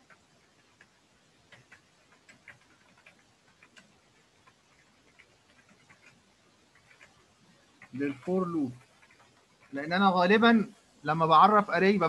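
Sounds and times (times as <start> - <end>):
keyboard typing clicks: 0.0 - 7.2.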